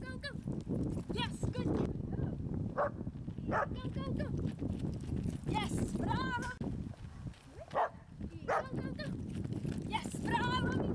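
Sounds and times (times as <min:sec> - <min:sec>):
wind rumble on microphone: 0:00.0 - 0:10.9.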